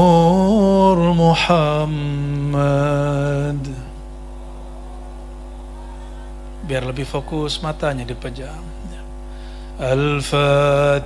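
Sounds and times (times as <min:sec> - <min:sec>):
man chanting into a microphone: 0:00.0 - 0:04.0, 0:06.6 - 0:09.0, 0:09.8 - 0:11.0
electrical hum: 0:00.0 - 0:11.0
person speaking: 0:06.6 - 0:09.1.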